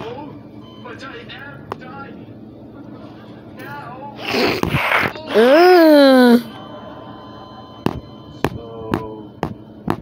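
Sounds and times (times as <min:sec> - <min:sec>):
steady electrical hum: 0:00.0 - 0:08.4
cartoon soundtrack from television: 0:00.0 - 0:10.0.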